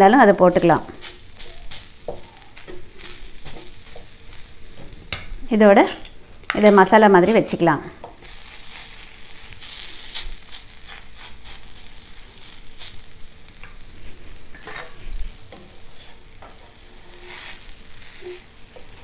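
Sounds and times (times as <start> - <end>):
food sizzling on a hot pan: 0.0 - 19.0.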